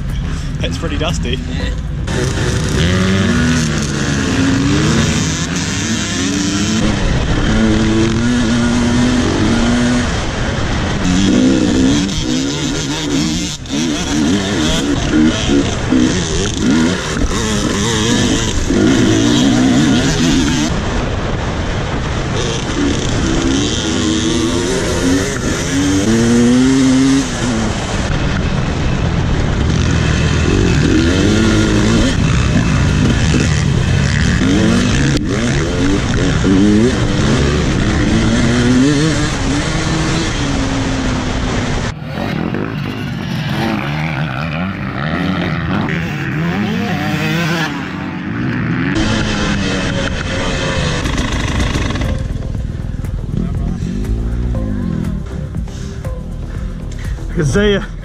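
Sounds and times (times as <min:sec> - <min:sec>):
wind noise: 0:00.0 - 0:43.8
dirt bike engine revving: 0:00.0 - 0:58.0.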